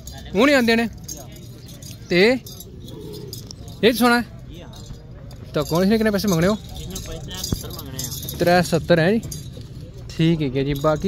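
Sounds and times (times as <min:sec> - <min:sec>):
faint metallic jingling: 0:00.0 - 0:11.0
murmur of market crowd: 0:00.0 - 0:11.0.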